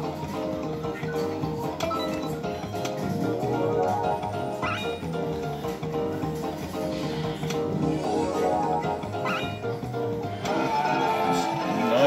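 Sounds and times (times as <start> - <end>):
electronic fruit machine music: 1.0 - 5.6, 7.7 - 10.1
wavering squeal: 7.9 - 9.6.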